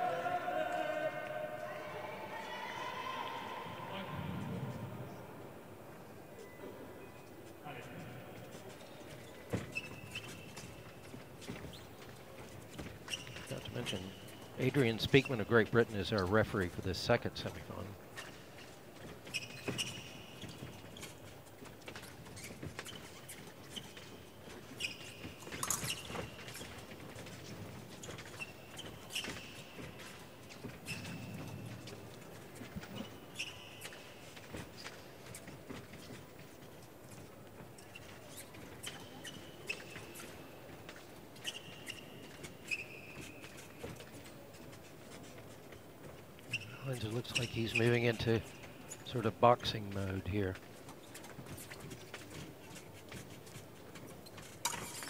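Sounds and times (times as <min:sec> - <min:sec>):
shoes squeaking on floor: 0:06.1 - 0:55.0.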